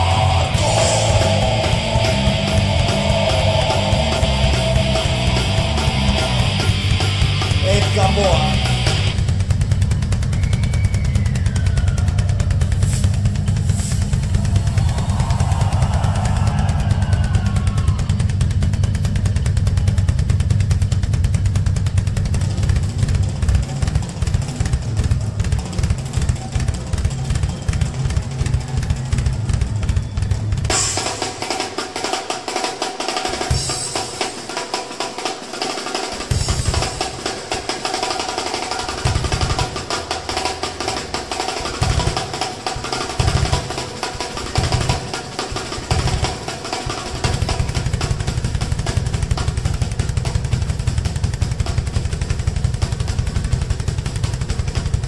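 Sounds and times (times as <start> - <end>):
rapid snare and cymbal hits: 0.0 - 55.0
kick drum and toms: 44.6 - 55.0.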